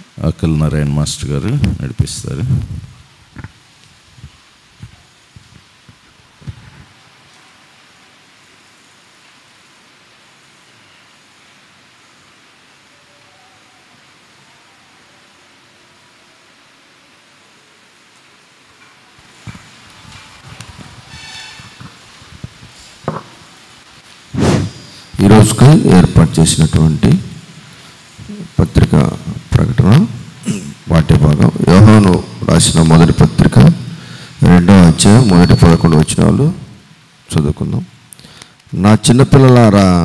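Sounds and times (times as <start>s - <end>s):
room hiss: 0.0s - 40.0s
microphone handling clicks: 4.2s - 6.8s, 24.4s - 24.8s.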